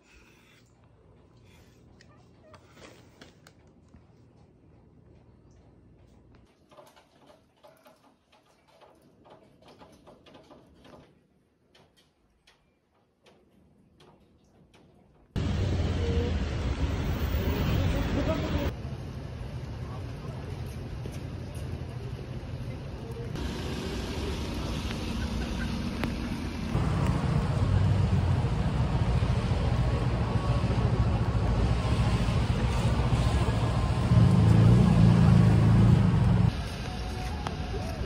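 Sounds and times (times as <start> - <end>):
road traffic rumble: 15.4 - 38.0.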